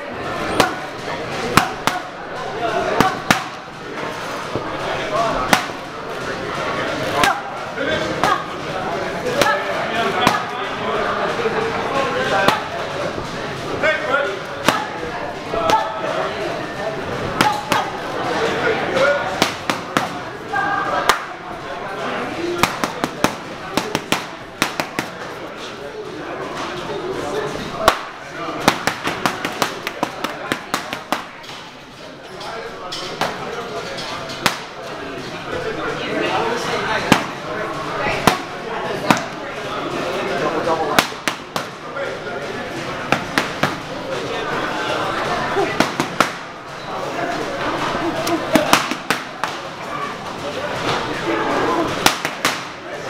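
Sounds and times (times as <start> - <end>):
murmur of voices: 0.0 - 53.0
boxing gloves smacking paddles: 3.0 - 3.6, 5.5 - 5.8, 19.4 - 20.2, 22.6 - 25.2, 27.8 - 31.3, 37.1 - 37.4, 40.9 - 41.8, 43.1 - 43.9, 45.8 - 46.5, 48.2 - 49.6, 52.0 - 52.7.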